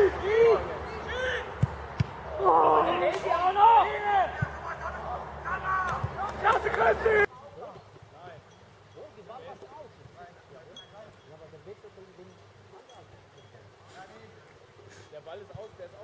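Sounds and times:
men shouting and cheering: 0.0s - 7.3s.

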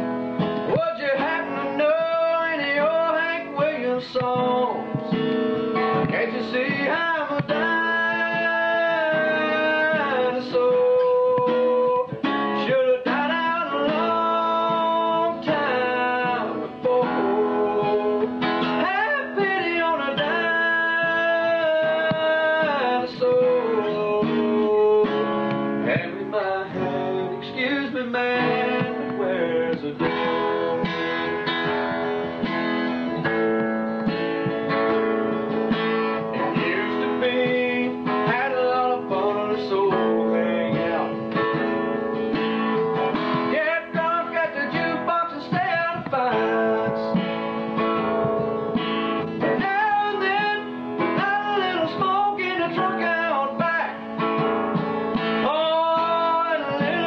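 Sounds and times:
acoustic guitar strummed and picked: 0.0s - 57.0s
man singing: 0.0s - 57.0s.

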